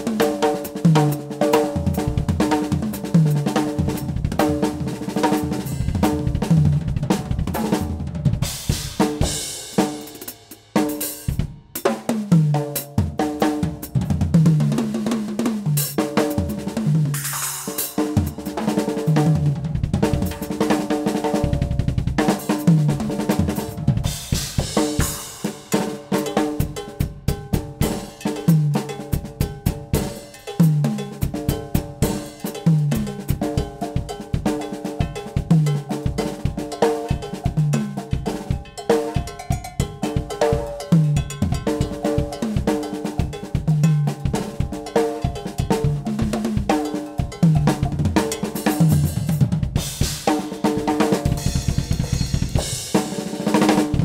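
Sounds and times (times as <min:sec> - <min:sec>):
drum solo: 0:00.0 - 0:54.0.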